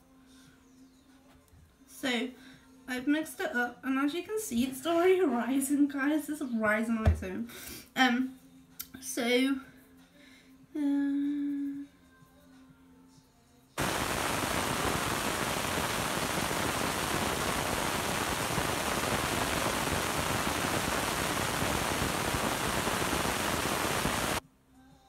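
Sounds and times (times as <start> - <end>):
steady hiss: 13.8 - 24.4.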